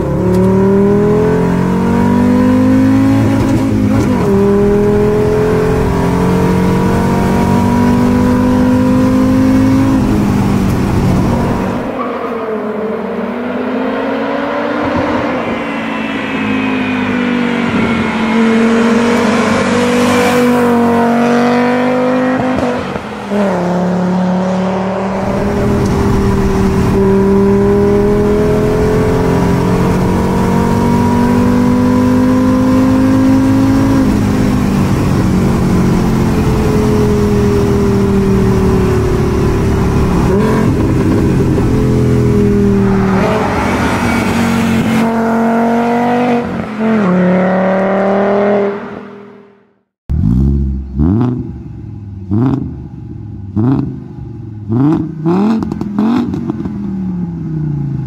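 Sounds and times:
car engine revving through gears: 0.0s - 52.8s, 53.5s - 54.0s, 54.6s - 56.8s.

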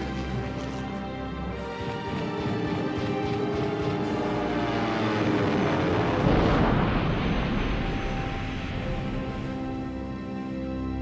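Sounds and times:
aircraft engine: 0.0s - 11.0s
orchestral music: 0.0s - 11.0s
explosion rumble: 5.4s - 9.6s.

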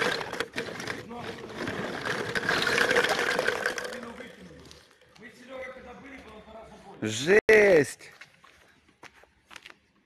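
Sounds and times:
glass bottles clinking: 1.8s - 4.2s.

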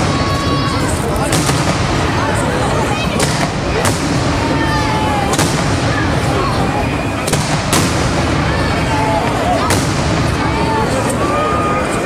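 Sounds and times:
sharp bangs: 0.0s - 11.3s
crowd chatter: 0.0s - 12.0s.

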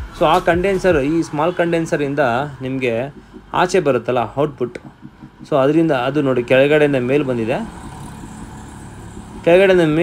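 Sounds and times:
man's voice: 0.0s - 7.7s
steady background hum: 0.0s - 10.0s.

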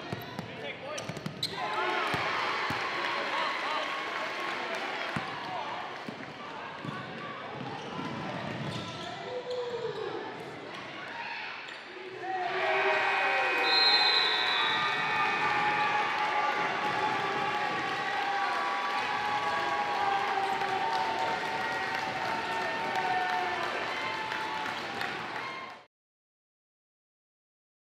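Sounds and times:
players and spectators shouting: 1.5s - 5.4s, 11.0s - 25.8s.

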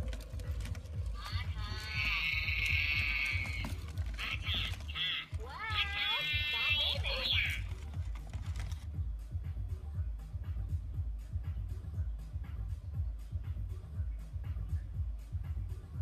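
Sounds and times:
electronic toys chattering and singing: 0.0s - 8.0s.

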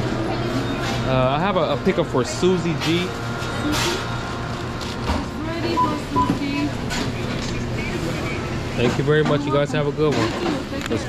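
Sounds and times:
kitchen equipment humming: 0.0s - 11.0s.

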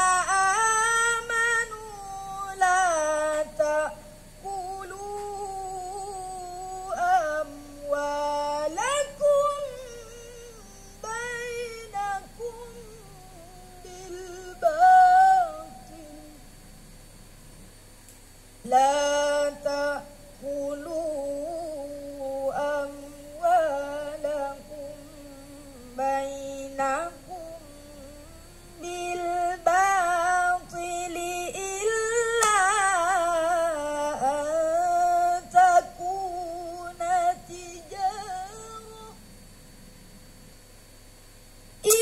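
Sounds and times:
boy reciting in long notes: 0.0s - 16.4s, 18.6s - 39.2s.

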